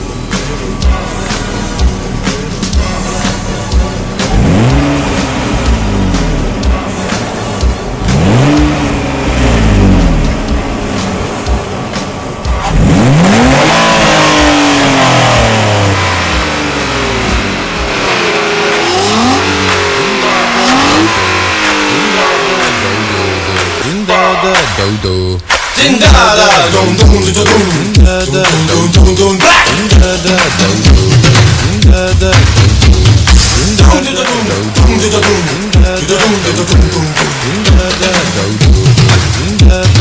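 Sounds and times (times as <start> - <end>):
car engine revving: 0.0 - 40.0.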